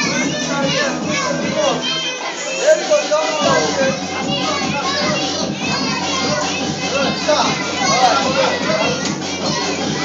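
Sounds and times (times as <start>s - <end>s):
children chattering and shouting: 0.0s - 10.0s.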